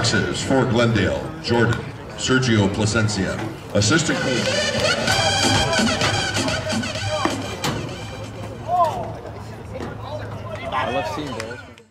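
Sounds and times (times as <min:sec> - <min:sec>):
field noise: 0:00.0 - 0:10.6
ballpark music: 0:03.8 - 0:10.6.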